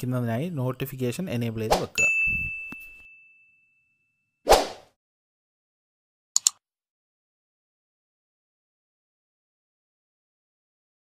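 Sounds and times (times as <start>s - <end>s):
bell-like ding: 2.0s - 4.3s.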